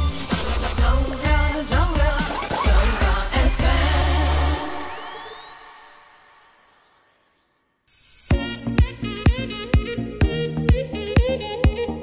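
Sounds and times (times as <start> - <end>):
radio jingle: 0.0 - 6.0.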